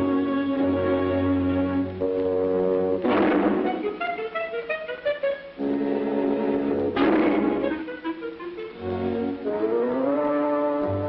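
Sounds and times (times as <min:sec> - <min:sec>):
orchestral brass chords: 0:00.0 - 0:11.0.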